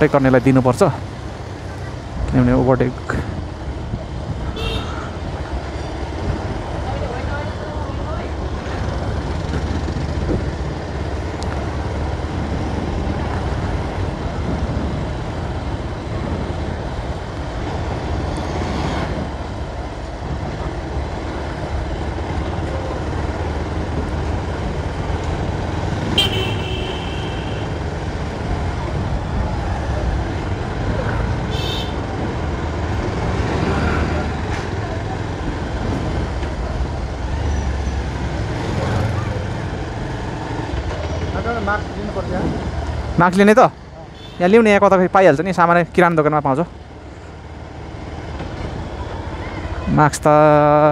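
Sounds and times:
street traffic: 0.0s - 50.9s
vehicle engine and road rumble: 0.0s - 50.9s
car horn toot: 4.6s - 5.0s, 26.2s - 27.7s, 31.5s - 32.0s.

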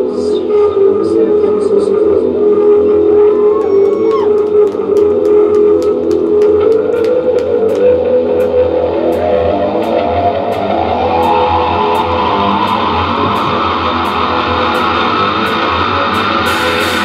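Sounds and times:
droning electric guitar chords: 0.0s - 17.0s
drums: 4.1s - 17.0s
cymbal strikes: 9.1s - 17.0s.

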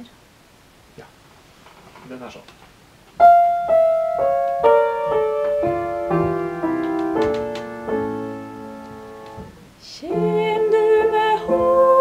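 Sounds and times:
upright piano playing: 3.2s - 12.0s.

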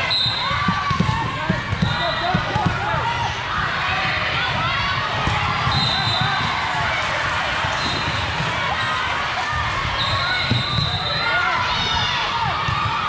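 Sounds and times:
voices of players and onlookers: 0.0s - 13.0s
volleyballs hit and bouncing: 0.0s - 13.0s.

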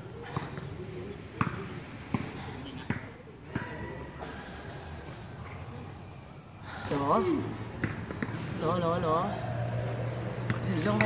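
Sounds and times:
basketball bouncing on concrete: 1.3s - 3.8s, 7.8s - 8.4s.

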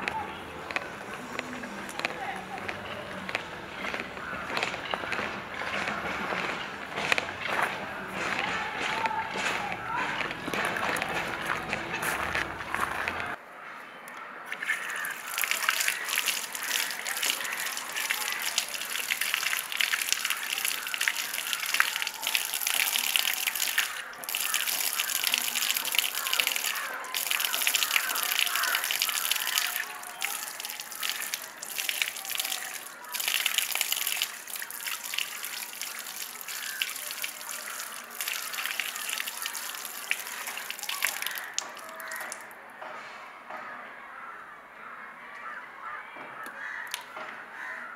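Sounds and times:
water splashing on hands: 14.5s - 42.5s
water gushing from a tap: 14.6s - 42.4s.

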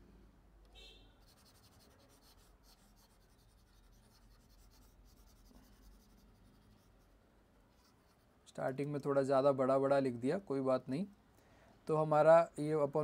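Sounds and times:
stylus scratching on tablet: 1.2s - 8.4s.

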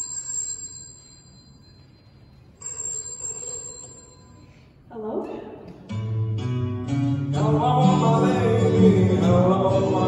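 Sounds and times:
telephone bell ringing: 0.0s - 4.8s.

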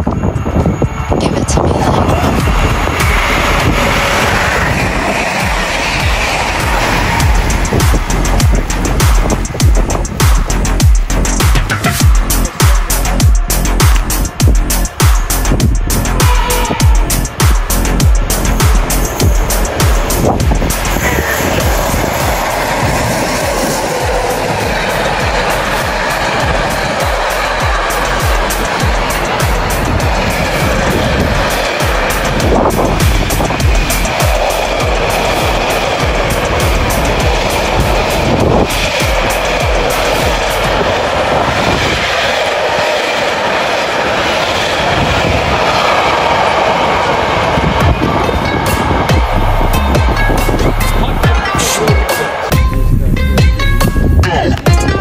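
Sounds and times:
freight train passing: 0.0s - 55.0s
wheels on rail: 0.0s - 55.0s.

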